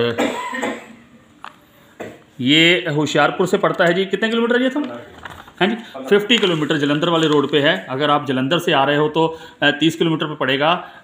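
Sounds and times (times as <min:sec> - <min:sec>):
person coughing: 0:00.0 - 0:01.1
person speaking: 0:01.1 - 0:10.9.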